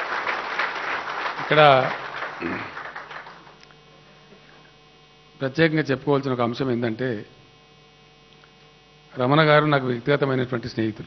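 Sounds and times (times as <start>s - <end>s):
faint electrical mains hum: 0.0s - 11.0s.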